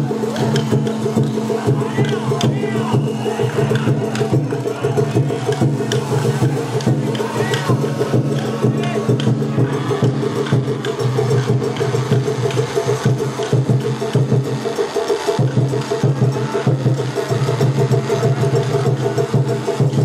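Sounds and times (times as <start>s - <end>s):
festival drumming: 0.0s - 20.0s.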